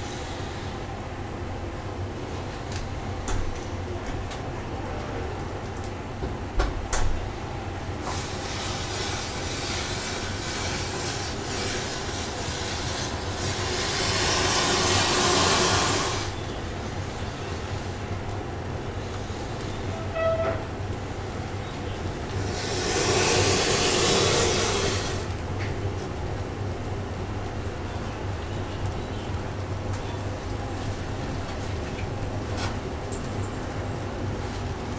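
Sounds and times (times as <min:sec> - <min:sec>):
fire rushing: 0:07.2 - 0:34.9.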